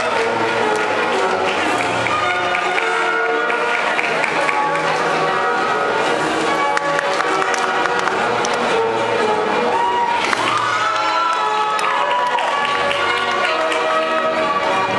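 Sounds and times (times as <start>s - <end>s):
music: 0.0s - 14.9s
audience cheering and clapping: 9.6s - 14.6s.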